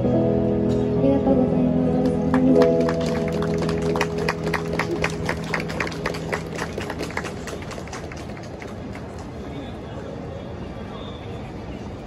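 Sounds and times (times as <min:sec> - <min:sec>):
audience applauding: 0:02.3 - 0:09.6.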